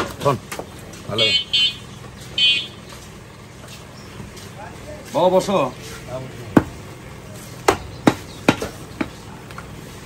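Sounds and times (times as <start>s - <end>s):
high-pitched horn tooting: 2.4s - 2.8s.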